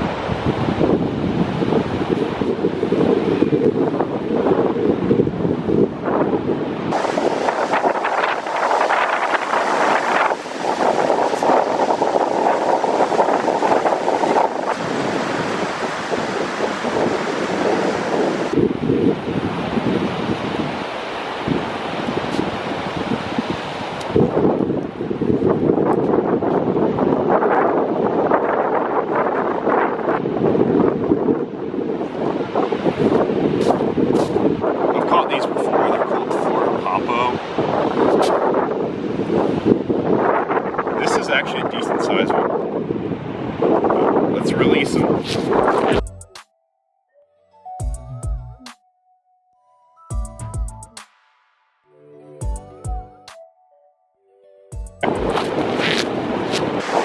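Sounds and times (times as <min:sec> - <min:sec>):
breaking surf: 0:00.0 - 0:24.4, 0:55.0 - 0:57.0
wind buffeting microphone: 0:00.0 - 0:46.1, 0:55.0 - 0:57.0.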